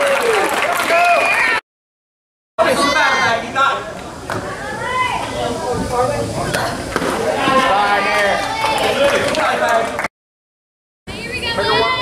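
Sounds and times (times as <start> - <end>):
people shouting and cheering: 0.0 - 1.6, 4.4 - 6.0, 6.6 - 10.0, 11.1 - 12.0.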